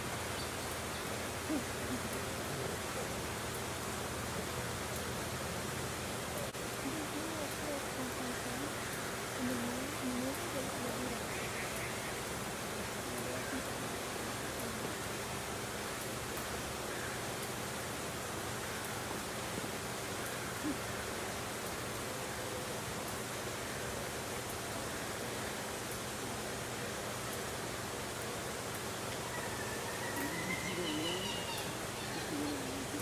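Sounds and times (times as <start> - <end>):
distant indistinct voices: 0.0 - 33.0
outdoor background hiss: 0.0 - 33.0.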